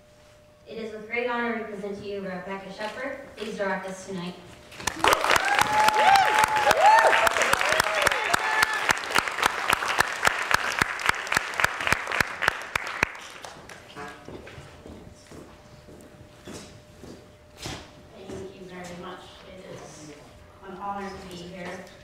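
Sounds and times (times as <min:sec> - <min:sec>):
audience applauding: 0:04.8 - 0:14.2
people whooping: 0:04.9 - 0:09.7.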